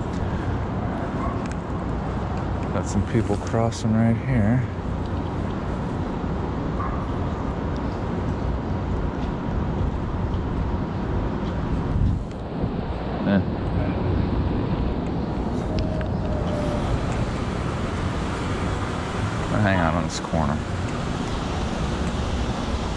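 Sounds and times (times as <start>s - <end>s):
traffic noise: 0.0s - 22.9s.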